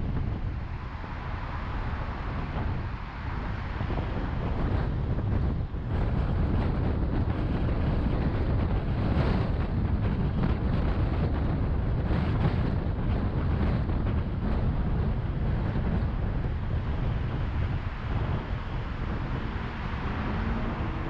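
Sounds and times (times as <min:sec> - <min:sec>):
car road noise: 0:00.0 - 0:21.0
wind rumbling on microphone: 0:00.0 - 0:21.0.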